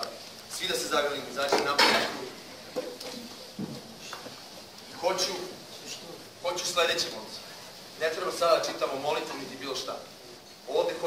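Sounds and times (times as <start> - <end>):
people shuffling: 0.0 - 9.6.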